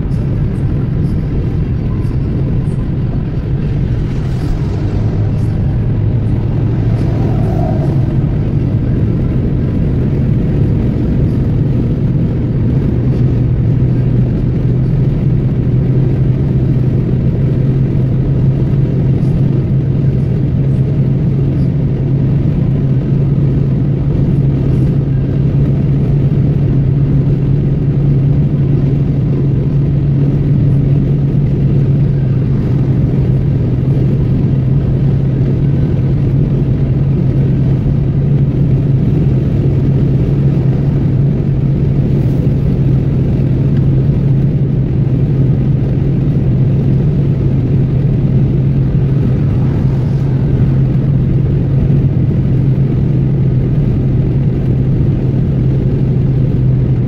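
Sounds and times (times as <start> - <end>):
car engine drone: 0.0 - 57.0.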